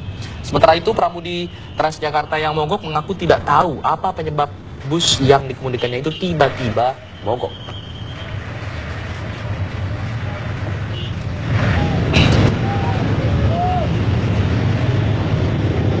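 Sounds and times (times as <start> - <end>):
bus and car engines rumbling: 0.0 - 16.0.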